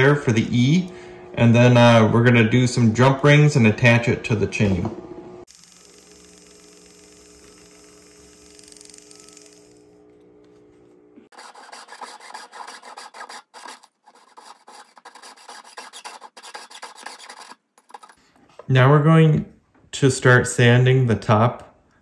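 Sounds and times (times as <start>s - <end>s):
rotary handpiece humming: 4.8s - 11.3s
saw blade cutting silver: 11.3s - 18.2s.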